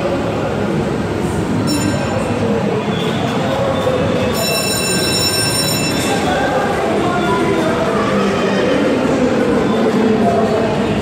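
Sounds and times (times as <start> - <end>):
ride car rumbling on track: 0.0 - 11.0
high wheel squeal: 1.6 - 6.4.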